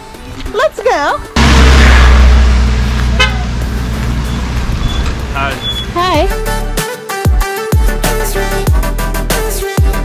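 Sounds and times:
vehicle engine running: 1.4s - 6.5s.

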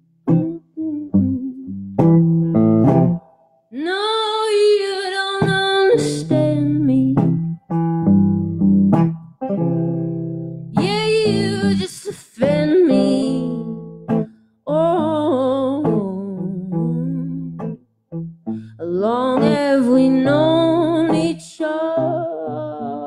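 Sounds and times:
electric guitar: 0.0s - 4.0s, 5.2s - 23.0s
woman singing slow song: 0.3s - 1.8s, 3.7s - 7.5s, 10.8s - 17.6s, 18.6s - 23.0s.

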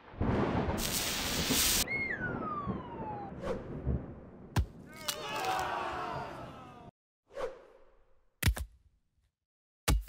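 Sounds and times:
long falling whistle: 1.8s - 3.7s.

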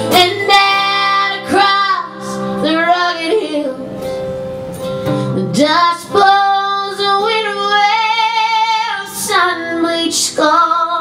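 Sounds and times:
woman singing: 0.0s - 4.2s, 5.2s - 11.0s
acoustic guitar: 0.0s - 11.0s.

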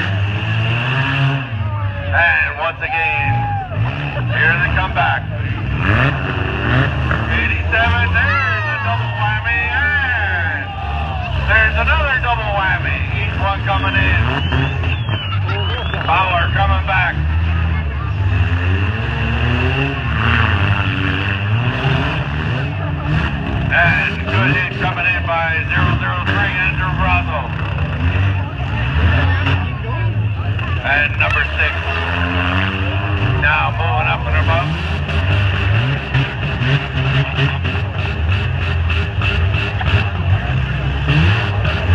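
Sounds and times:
car engines revving: 0.0s - 41.9s
announcer talking over loudspeaker: 1.3s - 38.1s.

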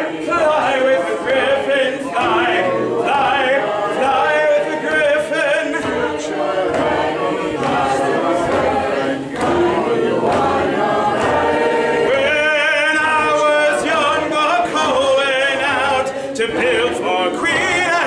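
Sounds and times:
person singing a cappella: 0.0s - 18.0s.

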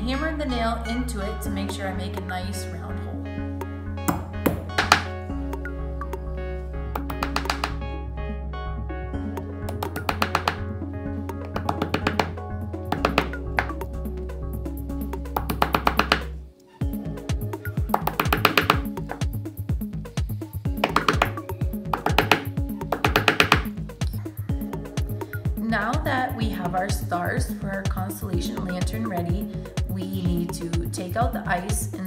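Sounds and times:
background music: 0.0s - 32.0s
hammer tapping on a nail: 7.0s - 7.8s, 9.7s - 10.6s, 11.5s - 13.8s, 17.9s - 18.9s, 20.8s - 23.7s.

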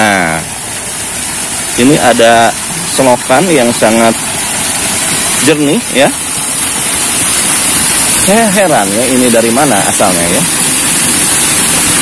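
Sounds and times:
water gushing from a pipe: 0.0s - 12.0s.

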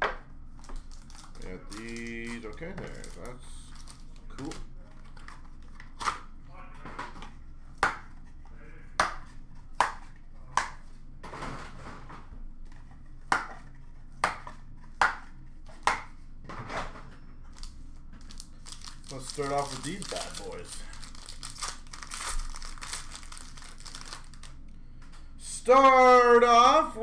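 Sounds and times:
wrapper crinkling: 0.6s - 6.1s, 17.5s - 24.7s.

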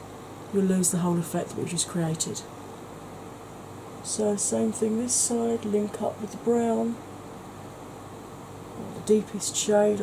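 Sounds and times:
faint hum: 0.0s - 10.0s
low hiss: 0.0s - 10.0s.

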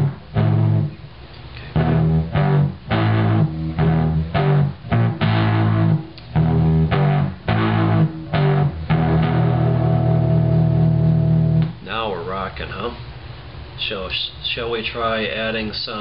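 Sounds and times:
distorted electric guitar chords: 0.0s - 1.0s, 1.6s - 11.8s.

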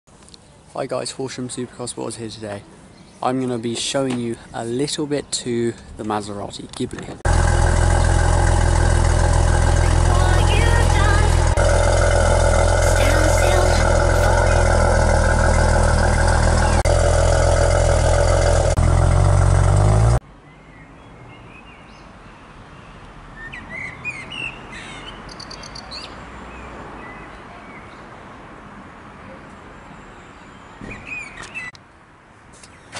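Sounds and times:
car engine idling: 7.3s - 20.2s
birds chirping: 7.5s - 16.9s, 23.6s - 28.0s.

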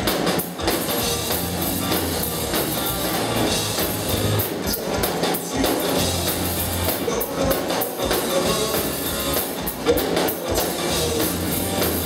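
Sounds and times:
live band music: 0.0s - 12.0s.

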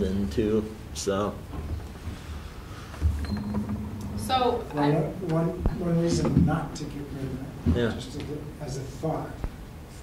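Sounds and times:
low room noise rumble: 0.0s - 10.0s.

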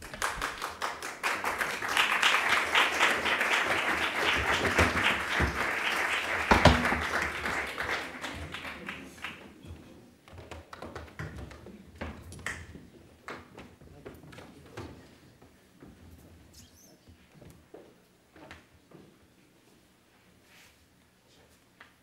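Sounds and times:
audience applauding: 0.0s - 9.6s.

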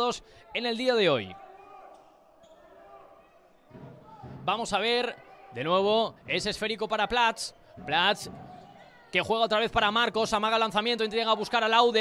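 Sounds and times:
ball bouncing on indoor court: 7.8s - 8.8s.

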